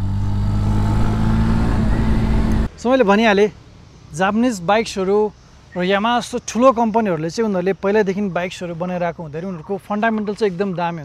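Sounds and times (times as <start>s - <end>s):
motorcycle engine running: 0.0s - 2.7s.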